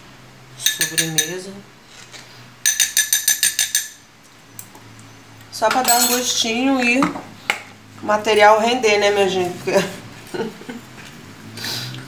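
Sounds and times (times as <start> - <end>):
metal spoon clinking against glass bowl: 0.6 - 1.4, 2.6 - 4.0, 5.8 - 6.4.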